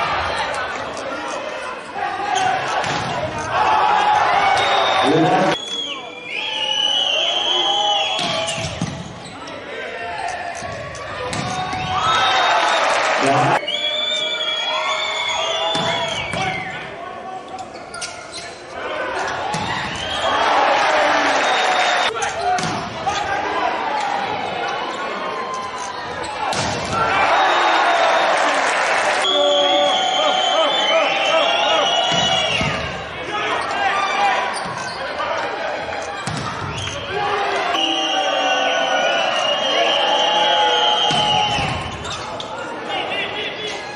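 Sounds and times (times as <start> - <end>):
shoes squeaking on court floor: 8.2 - 12.3, 17.4 - 20.2, 24.0 - 26.5, 33.4 - 37.2, 41.6 - 42.7
players calling out: 15.3 - 43.9
sneakers squeaking on court: 17.5 - 20.2, 34.4 - 35.2, 41.1 - 42.7.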